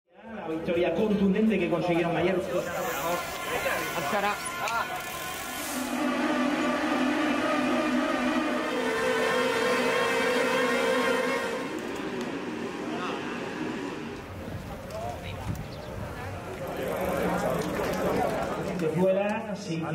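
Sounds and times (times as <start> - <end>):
voices: 0.4 - 19.9
bike tyres whirring on rollers: 2.5 - 6.9, 11.3 - 19.0.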